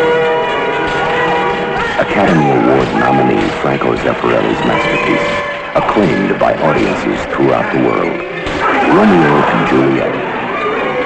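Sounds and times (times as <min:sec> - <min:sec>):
church bells ringing: 0:00.0 - 0:11.0.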